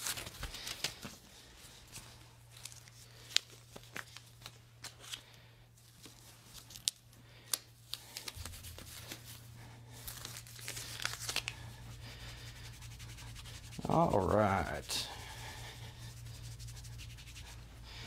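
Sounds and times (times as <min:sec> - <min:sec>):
tape peeling crackles: 0:00.0 - 0:01.2, 0:02.5 - 0:12.0
tape tearing and crinkling: 0:00.0 - 0:01.2, 0:02.5 - 0:05.3, 0:05.9 - 0:11.7.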